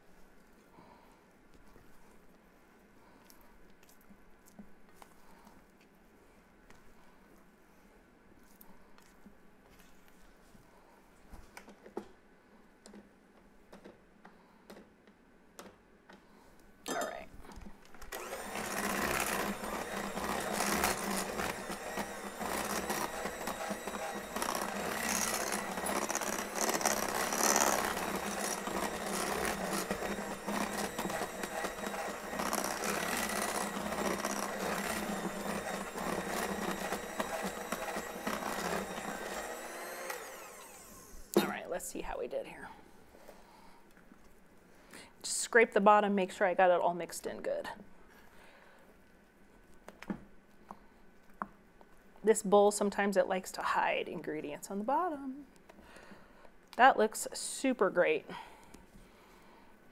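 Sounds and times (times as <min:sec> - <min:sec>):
electric hand mixer beating batter: 0:18.1 - 0:41.5
spatula scraping bowl: 0:18.3 - 0:39.6.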